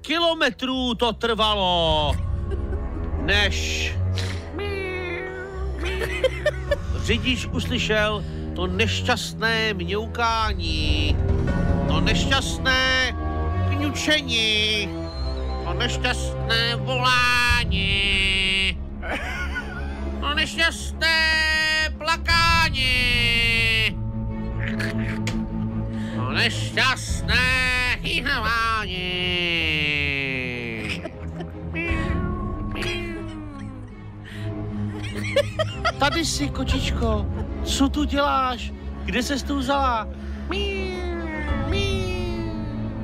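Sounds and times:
background music: 0:00.0 - 0:43.0
cat meowing: 0:31.8 - 0:33.7.

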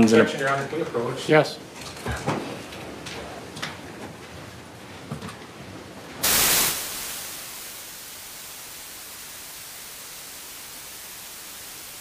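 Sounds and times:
static hiss: 0:06.2 - 0:12.0.

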